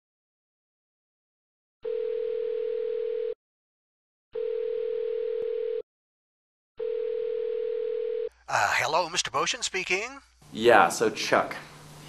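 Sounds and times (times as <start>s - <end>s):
telephone ring tone: 1.8s - 3.4s, 4.4s - 5.8s, 6.8s - 8.3s.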